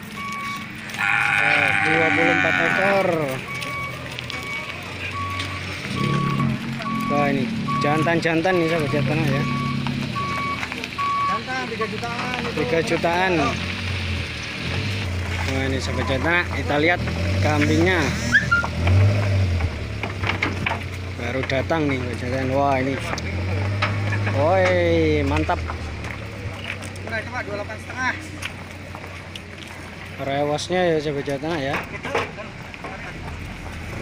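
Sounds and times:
reversing alarm beeping: 0.0s - 0.7s, 2.7s - 11.5s
goat hooves knocking and scraping: 0.0s - 18.0s, 18.6s - 34.0s
low engine hum: 2.5s - 30.2s.

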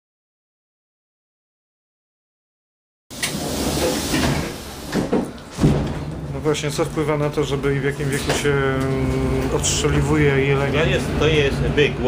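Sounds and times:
train carriage rumble: 3.1s - 12.0s.

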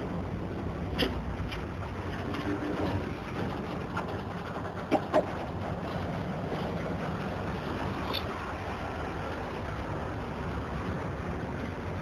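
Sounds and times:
freight wagons rumbling on rails: 0.0s - 12.0s.

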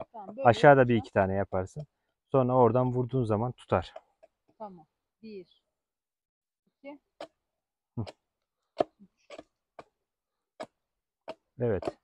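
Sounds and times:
hatchet tapping wood: 8.0s - 12.0s.

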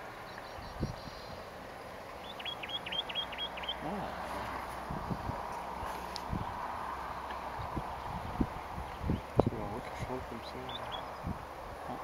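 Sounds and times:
bird calling high notes: 2.2s - 4.2s.

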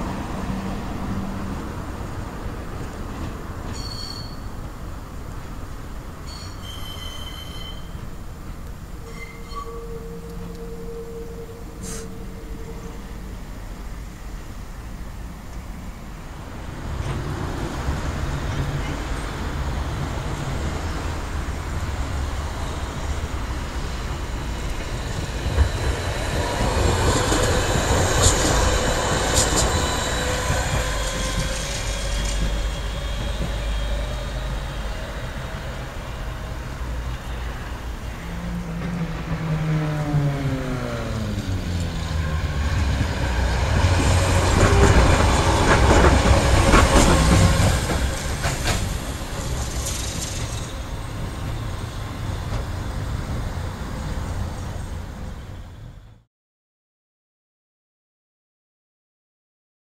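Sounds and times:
tram rolling noise: 0.0s - 56.2s
faint wheel squeal: 3.8s - 4.6s, 6.3s - 8.0s, 9.0s - 13.4s.

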